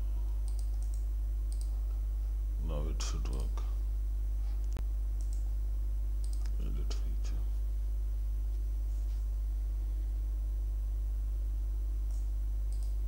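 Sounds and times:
steady low hum: 0:00.0 - 0:13.0
computer mouse clicks: 0:00.4 - 0:01.8, 0:04.6 - 0:05.5, 0:06.2 - 0:06.6, 0:12.1 - 0:13.0.

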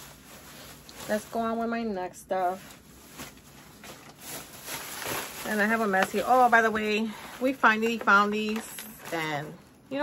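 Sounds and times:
shopping bag rustling: 0:00.0 - 0:10.0.

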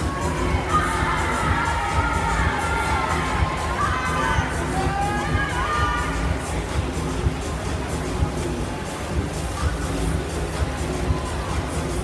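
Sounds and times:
music: 0:00.0 - 0:12.0
spectators shouting and cheering: 0:00.0 - 0:12.0.

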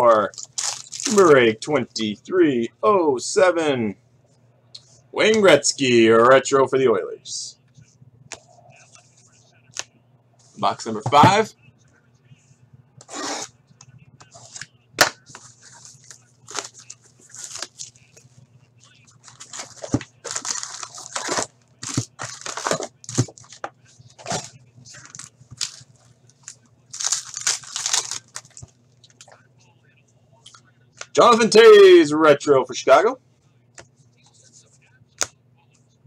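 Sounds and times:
steady low hum: 0:00.0 - 0:36.0
cardboard and foil tearing: 0:00.3 - 0:01.3, 0:15.6 - 0:17.9, 0:19.2 - 0:23.2, 0:26.9 - 0:28.6.

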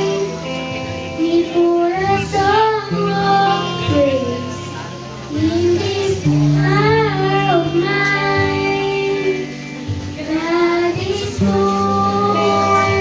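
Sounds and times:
child singing a church song: 0:00.0 - 0:13.0
instrumental accompaniment: 0:00.0 - 0:13.0
long held bass notes: 0:00.0 - 0:13.0.

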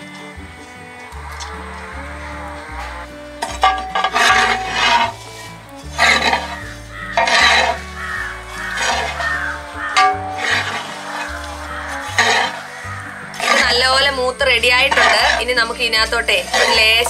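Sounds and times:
background music with bass line: 0:00.0 - 0:17.0
metal spoon scraping metal pan: 0:03.4 - 0:17.0.

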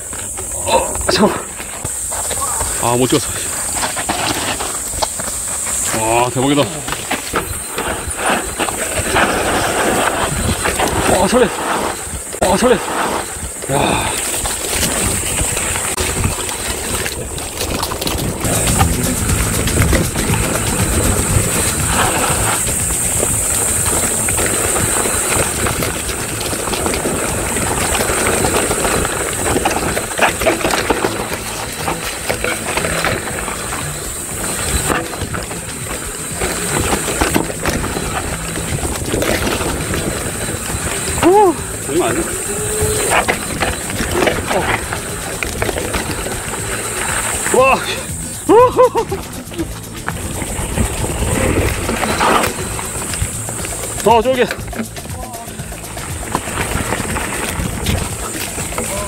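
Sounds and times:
bike tyres rushing and rattling: 0:00.0 - 0:59.0.

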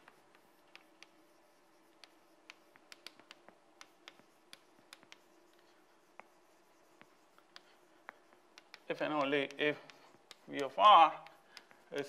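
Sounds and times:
chalk tapping and scratching: 0:00.0 - 0:12.0.

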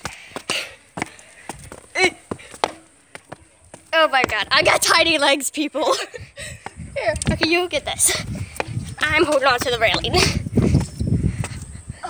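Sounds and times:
footsteps on stone steps: 0:00.0 - 0:11.8.

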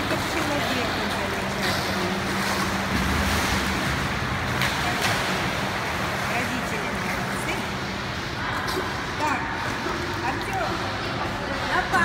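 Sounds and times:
water splashing from swimming strokes: 0:00.0 - 0:12.0.

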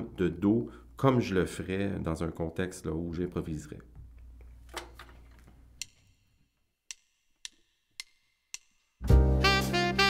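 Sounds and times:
sharp count-in ticks: 0:05.8 - 0:06.2, 0:06.8 - 0:09.0.

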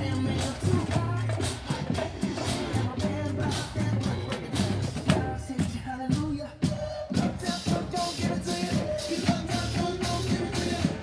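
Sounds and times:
drum line playing funk music: 0:00.0 - 0:11.0.

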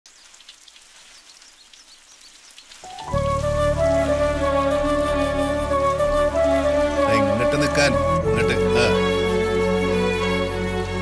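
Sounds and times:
faint hiss with crackle: 0:00.1 - 0:03.8
film music with flute melody: 0:02.8 - 0:11.0.

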